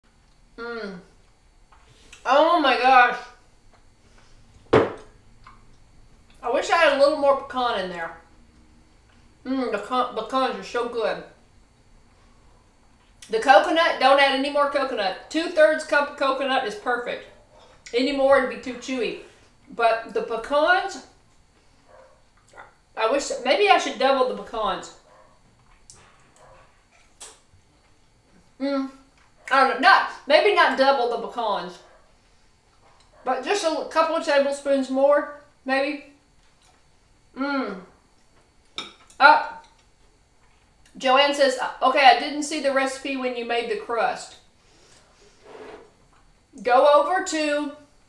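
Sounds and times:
person eating: 22.3 - 22.8, 25.6 - 29.4, 36.4 - 37.6.

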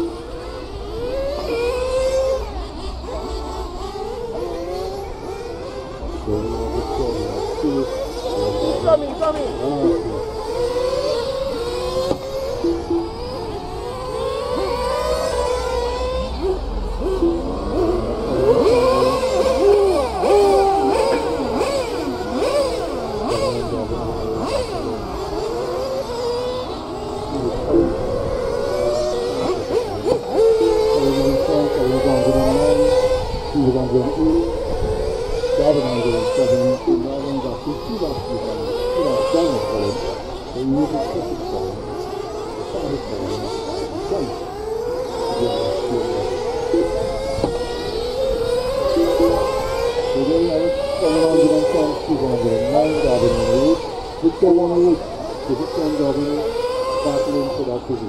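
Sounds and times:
rc car motors revving: 0.0 - 58.0.

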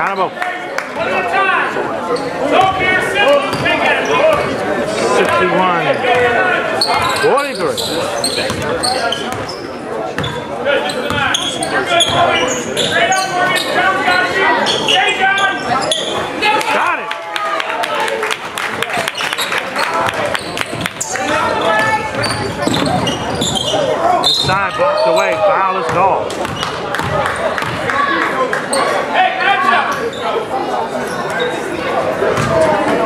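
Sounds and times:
basketball bouncing on hardwood: 22.1 - 23.1.

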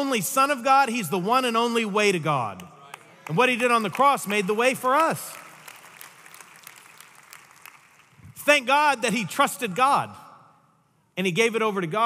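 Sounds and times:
faint scattered applause: 2.8 - 8.3.

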